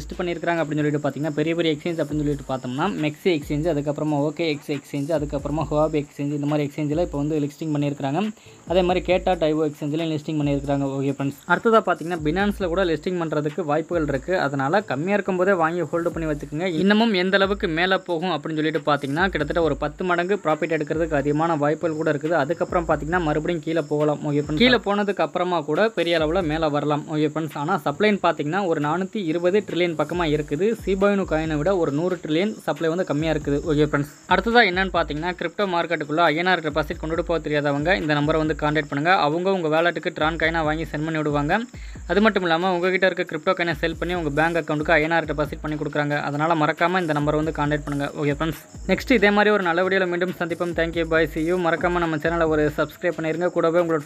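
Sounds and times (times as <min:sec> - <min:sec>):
person talking: 0:00.0 - 0:54.0.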